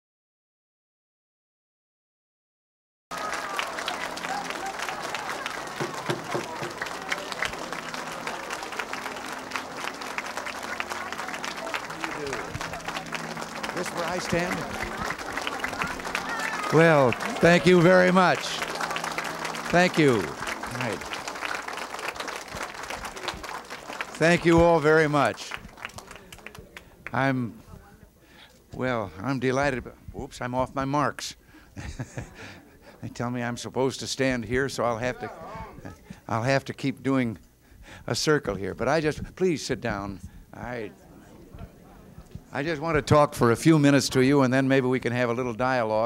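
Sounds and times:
voices calling out: 0:03.1 - 0:25.4
crowd applauding: 0:03.1 - 0:27.3.

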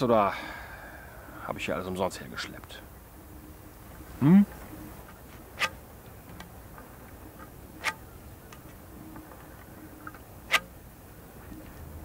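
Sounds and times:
faint steady background noise: 0:00.0 - 0:12.0.

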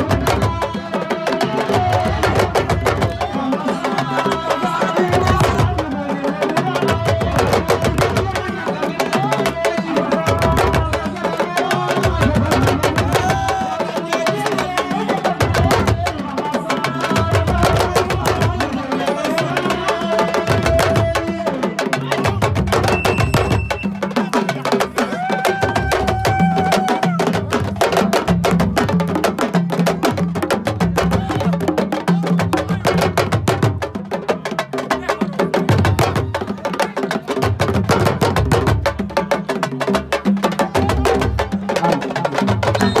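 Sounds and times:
fast hand drumming: 0:00.0 - 0:43.0
voices calling: 0:40.5 - 0:43.0.

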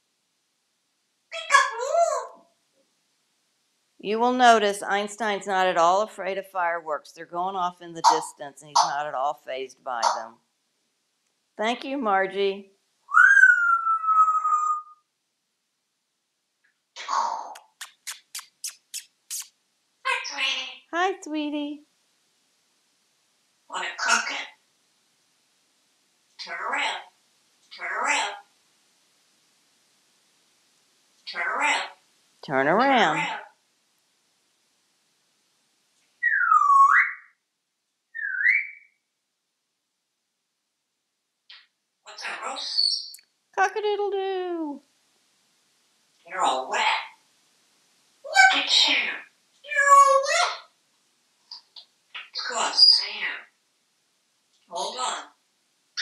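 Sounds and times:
parrot whistling: 0:13.1 - 0:15.0, 0:17.6 - 0:19.5, 0:36.2 - 0:37.3, 0:38.1 - 0:38.9.

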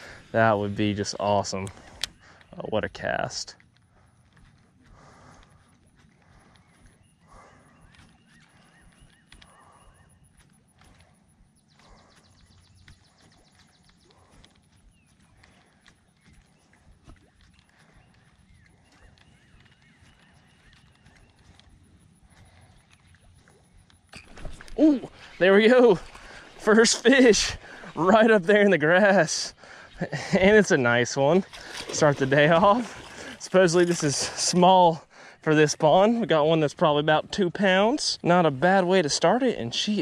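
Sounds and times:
faint distant calls: 0:00.0 - 0:39.4
light ticks of lure: 0:01.5 - 0:02.6, 0:03.5 - 0:24.8
fish striking lure splash: 0:31.5 - 0:33.1.

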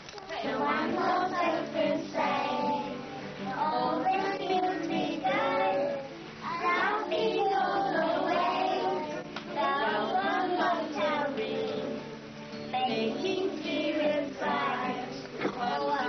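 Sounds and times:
acoustic guitar: 0:00.0 - 0:16.0
children singing: 0:00.3 - 0:16.0.

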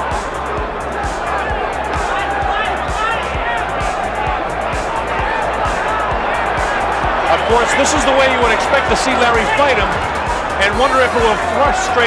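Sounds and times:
arena crowd noise: 0:00.0 - 0:12.0
background music with beat: 0:00.0 - 0:12.0
crowd shouts: 0:00.0 - 0:12.0.

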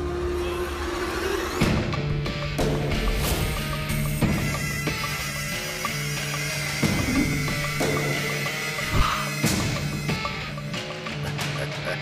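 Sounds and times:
dramatic film music held tones: 0:00.0 - 0:12.0.

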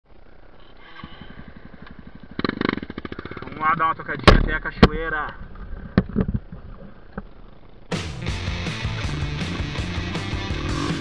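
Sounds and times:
dirt bike engine idling: 0:00.1 - 0:11.0.

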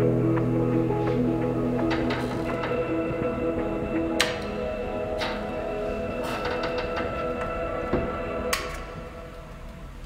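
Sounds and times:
tape loop sustained notes: 0:00.0 - 0:10.0.

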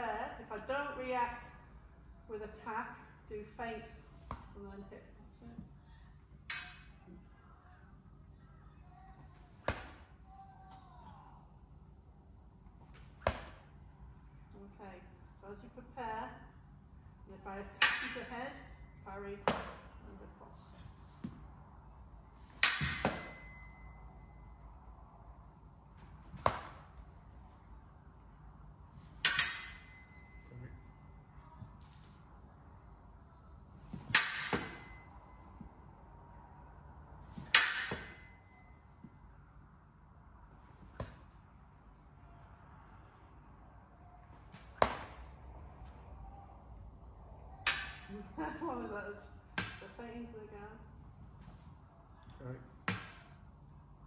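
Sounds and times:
fencing blades clashing: 0:06.4 - 0:07.2, 0:17.6 - 0:18.8, 0:22.4 - 0:24.6, 0:29.0 - 0:31.1, 0:33.9 - 0:35.7, 0:37.3 - 0:38.7, 0:47.6 - 0:48.4.

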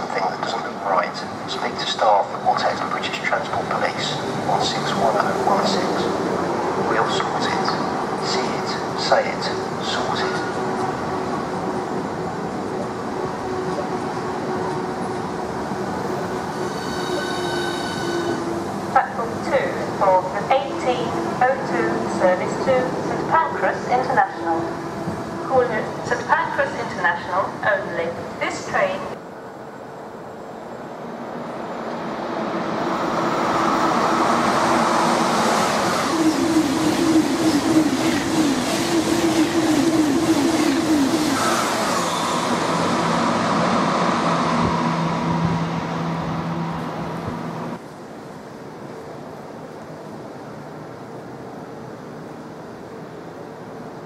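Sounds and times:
speech: 0:00.0 - 0:06.2, 0:06.9 - 0:10.5, 0:19.0 - 0:24.7, 0:25.5 - 0:29.2
electric train running hum: 0:00.0 - 0:28.4, 0:29.0 - 0:54.0
train passing at speed: 0:00.0 - 0:54.0.

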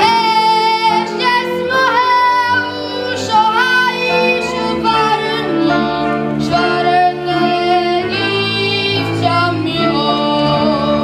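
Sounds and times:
boy singing: 0:00.0 - 0:11.0
fiddle and clarinet folk band: 0:00.0 - 0:11.0.

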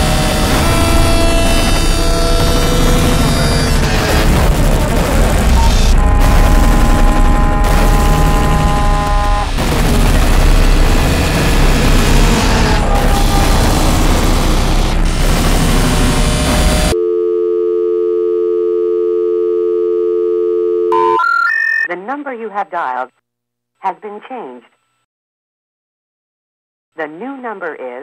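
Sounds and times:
harsh noise music: 0:00.0 - 0:17.0
rising special information tones: 0:00.0 - 0:17.0
telephone line tone: 0:16.5 - 0:21.9.

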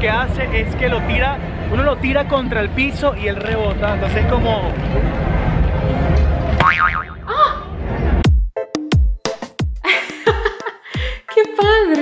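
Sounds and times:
crowd noise: 0:00.0 - 0:08.2
street noise: 0:00.0 - 0:08.3
cartoon boing with wobbling pitch: 0:06.6 - 0:07.3.

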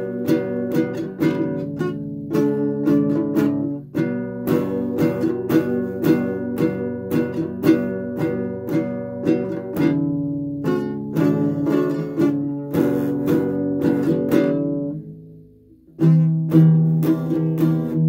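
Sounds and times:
acoustic guitar strumming chords: 0:00.0 - 0:18.0.

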